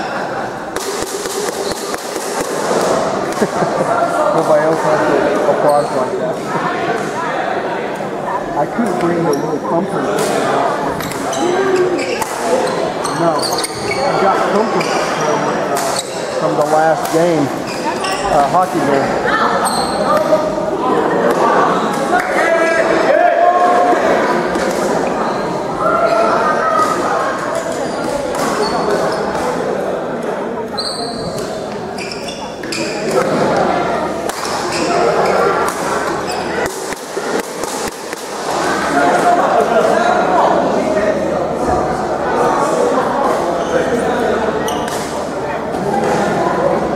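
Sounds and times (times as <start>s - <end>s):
chatter of voices: 0.0s - 46.9s
people talking: 0.0s - 46.9s
rackets hitting shuttlecock: 0.7s - 3.4s, 36.6s - 38.4s.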